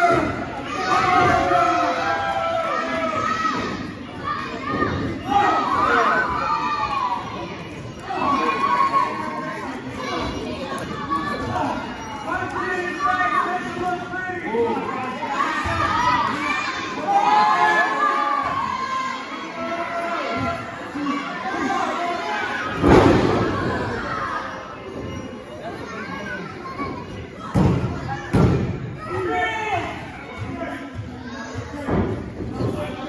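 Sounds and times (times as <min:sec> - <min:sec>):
crowd voices and shouts: 0:00.0 - 0:33.0.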